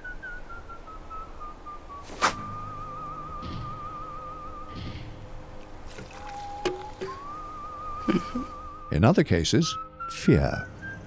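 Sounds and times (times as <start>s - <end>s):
thin whistle-like sliding tone: 0.0s - 4.7s, 6.1s - 8.9s
faint low background noise: 0.0s - 11.0s.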